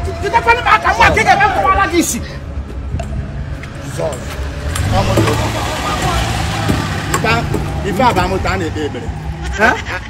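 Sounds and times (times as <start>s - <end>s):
voices talking: 0.0s - 2.7s, 3.7s - 10.0s.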